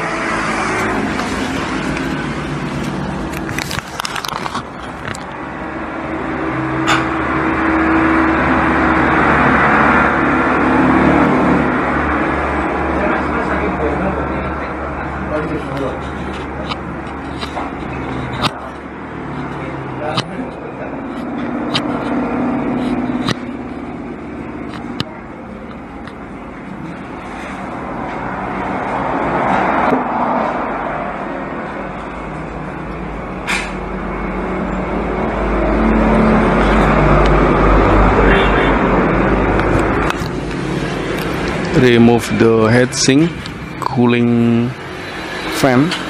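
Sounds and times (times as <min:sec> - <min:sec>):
road traffic rumble: 0:00.0 - 0:46.0.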